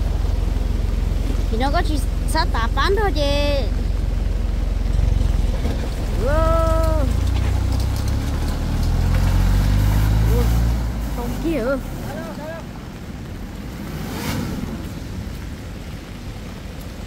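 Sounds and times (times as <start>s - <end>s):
tractor and truck engines running: 0.0s - 17.0s
engine revving up: 4.8s - 12.4s, 13.7s - 15.1s
person calling out: 6.2s - 7.2s.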